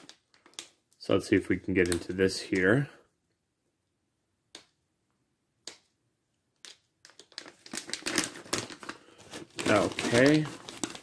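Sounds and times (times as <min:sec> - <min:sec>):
plastic pouch crinkling: 0:00.0 - 0:01.0, 0:06.6 - 0:11.0.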